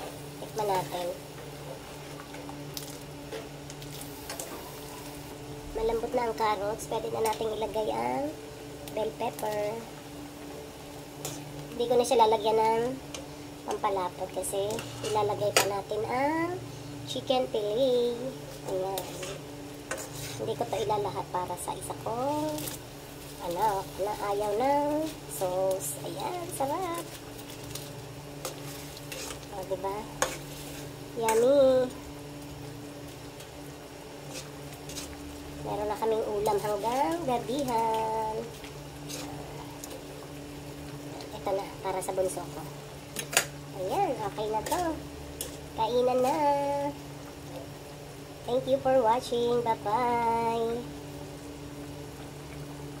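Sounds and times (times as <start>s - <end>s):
sauce simmering in a wok: 0.0s - 53.0s
steady hum: 0.0s - 53.0s
ladle stirring sauce: 19.0s - 20.8s, 27.2s - 31.4s, 34.2s - 35.4s, 36.4s - 40.1s.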